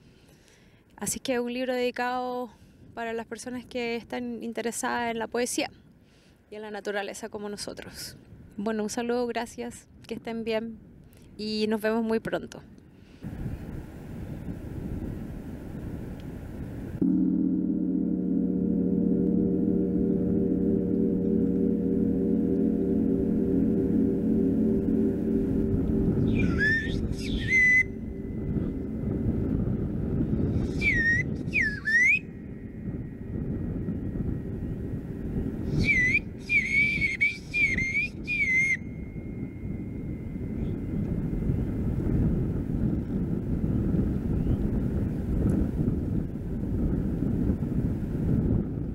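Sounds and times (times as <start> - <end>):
wind rumbling on microphone: 7.3 - 48.9
gong humming: 17.0 - 37.8, 38.8 - 43.0
bird-call whistle warbling: 25.0 - 29.1, 30.4 - 33.2, 35.6 - 40.9.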